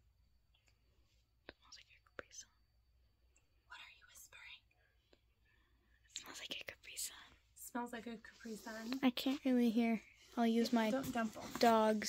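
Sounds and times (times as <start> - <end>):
faint whispered speech: 3.7 - 4.6.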